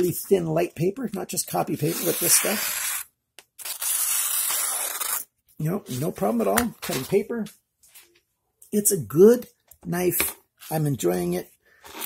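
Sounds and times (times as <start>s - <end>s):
knife slicing through paper: 3.6s - 5.3s.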